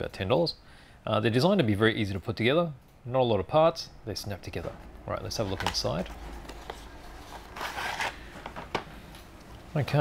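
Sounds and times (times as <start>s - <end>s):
paper and card rustling: 5.3s - 8.9s.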